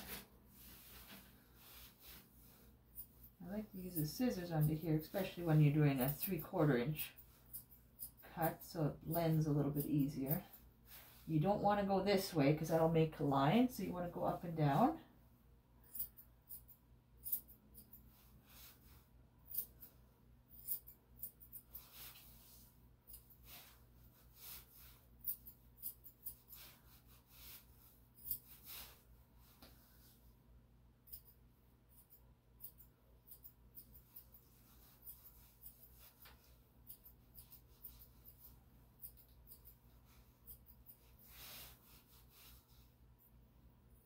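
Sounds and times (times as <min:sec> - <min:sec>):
scissors snipping hair: 0:03.0 - 0:10.5, 0:20.5 - 0:22.2, 0:31.1 - 0:42.1.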